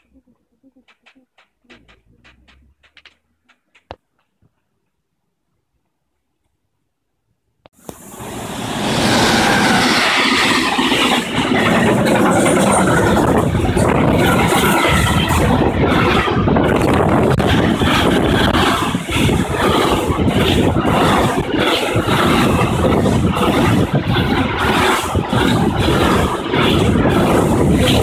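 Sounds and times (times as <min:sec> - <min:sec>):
freight train passing: 0:07.8 - 0:28.0.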